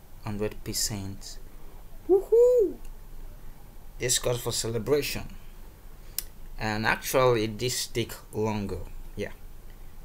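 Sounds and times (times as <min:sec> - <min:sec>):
man whooping: 0:02.1 - 0:02.9.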